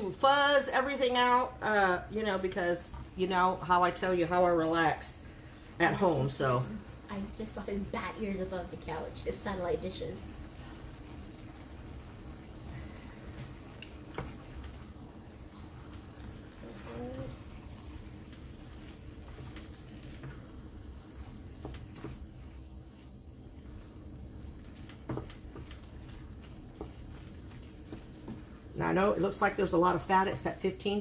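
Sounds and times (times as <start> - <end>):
meat sizzling in a skillet: 0.0 - 31.0
wooden spoon scraping a pan: 16.6 - 30.6.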